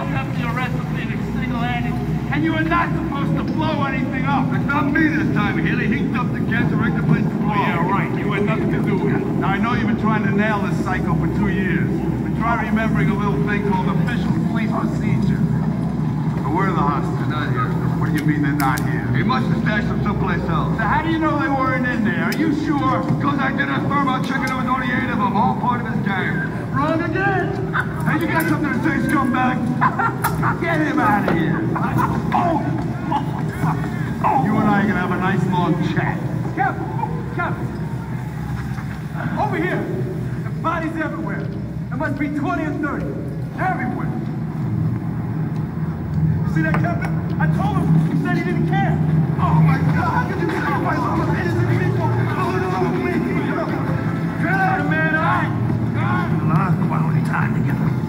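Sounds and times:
man speaking in film dialogue: 0.0s - 15.5s, 16.4s - 37.8s
low soundtrack rumble: 0.0s - 58.0s.

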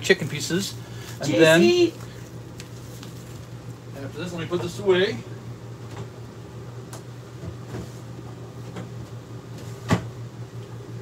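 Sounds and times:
low kitchen hum: 0.0s - 11.0s.

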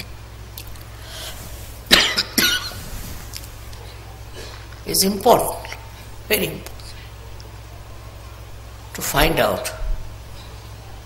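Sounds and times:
woman coughing: 1.9s - 2.8s.

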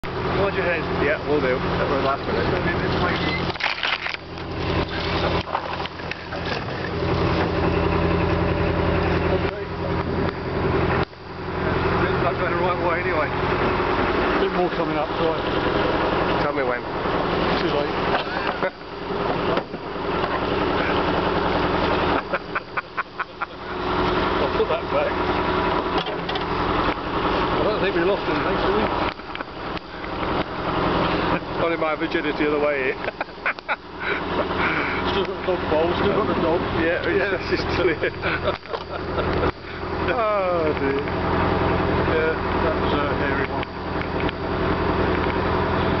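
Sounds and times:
boat engine running: 0.0s - 46.0s.

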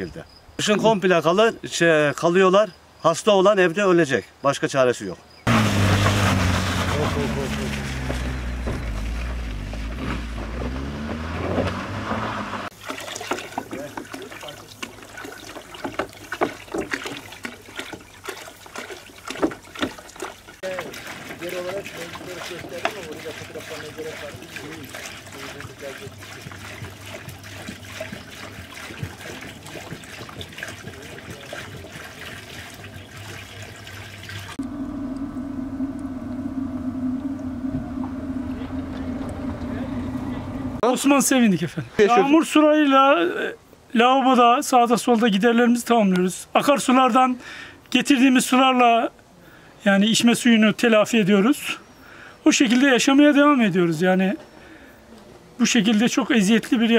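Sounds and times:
car engine pulling away: 5.5s - 12.7s, 34.4s - 40.8s
water gurgling into jug: 12.7s - 40.2s
water pump humming: 12.7s - 40.8s
plastic jugs knocking: 12.8s - 18.1s, 18.8s - 33.0s.

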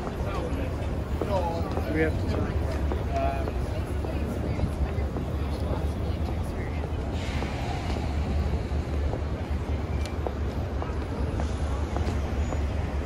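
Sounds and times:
low rumble of traffic: 0.0s - 13.0s
passers-by talking: 0.0s - 13.0s
passing vehicle hiss: 7.0s - 10.2s.

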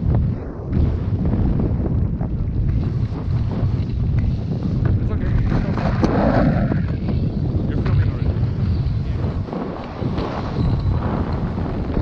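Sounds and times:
airflow buffeting microphone: 0.0s - 12.0s.

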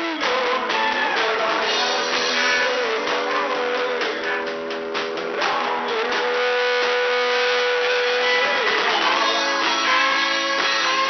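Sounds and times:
live rock band: 0.0s - 11.0s.

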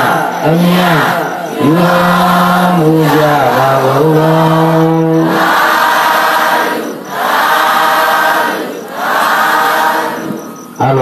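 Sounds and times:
low male voice chanting: 0.0s - 5.4s
congregation chanting in unison: 0.0s - 11.0s.

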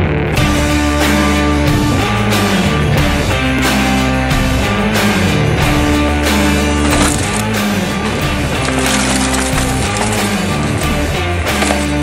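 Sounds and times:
rock music with guitar: 0.0s - 12.0s.

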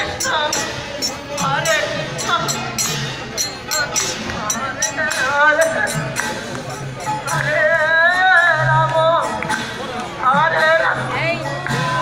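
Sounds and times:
group devotional singing: 0.0s - 12.0s
hand cymbals striking: 0.0s - 12.0s.

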